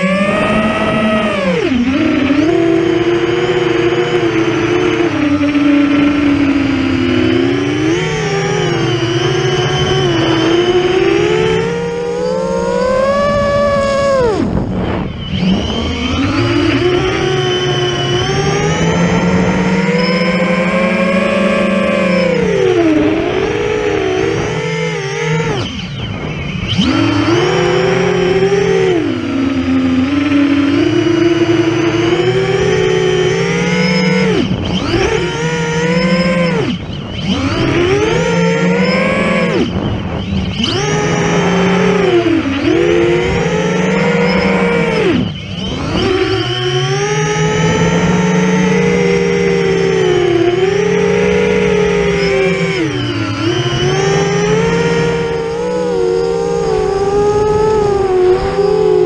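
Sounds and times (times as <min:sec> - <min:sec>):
drone motors whining: 0:00.0 - 0:59.0.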